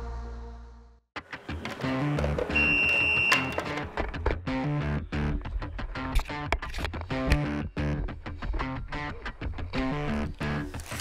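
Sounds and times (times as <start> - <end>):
background music with steady beat: 1.2 - 10.7
high steady beep: 2.6 - 3.6.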